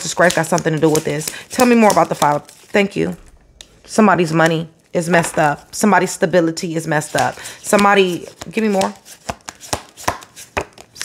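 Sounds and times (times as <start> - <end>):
cards being shuffled: 0.0 - 2.8, 7.0 - 11.0.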